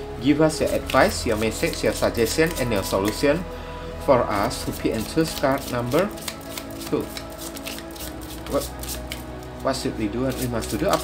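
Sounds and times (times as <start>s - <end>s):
background music with held notes: 0.0s - 11.0s
cards shuffled by hand: 0.6s - 3.4s, 4.3s - 9.6s, 10.3s - 11.0s.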